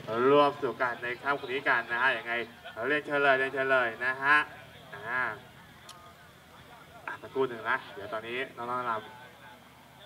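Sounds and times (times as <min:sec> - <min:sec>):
man speaking over pa system: 0:00.0 - 0:05.5, 0:06.2 - 0:09.7
low background noise: 0:00.0 - 0:10.0.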